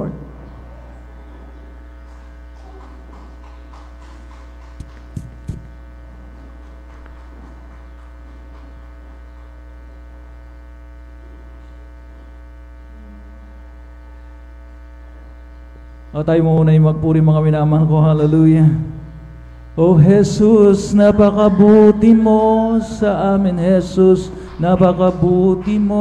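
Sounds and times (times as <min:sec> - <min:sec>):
electrical mains hum: 0:00.0 - 0:26.0
microphone handling thumps: 0:03.1 - 0:08.4.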